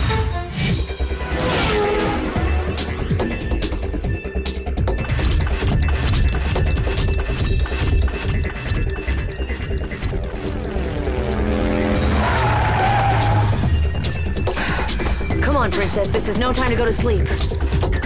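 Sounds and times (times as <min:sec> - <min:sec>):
fast action music: 0:00.0 - 0:18.0
hover-motorbike engine effect: 0:00.8 - 0:04.2, 0:09.9 - 0:14.3.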